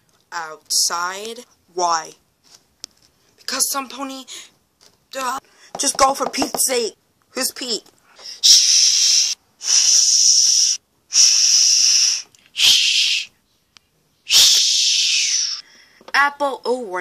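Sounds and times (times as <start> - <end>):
loud hissing bursts: 8.4 - 13.3, 14.3 - 15.6.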